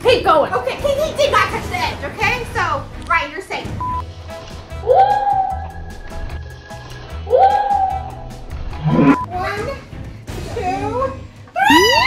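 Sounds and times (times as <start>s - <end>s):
background music with bass beat: 3.8s - 9.4s.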